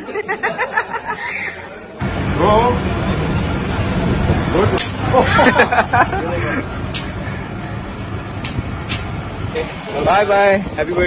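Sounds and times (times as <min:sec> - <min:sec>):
vehicle engines humming: 0:01.9 - 0:11.0.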